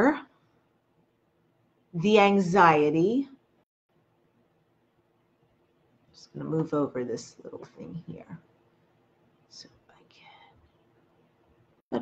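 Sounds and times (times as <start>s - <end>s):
soft whisper: 9.5s - 10.9s.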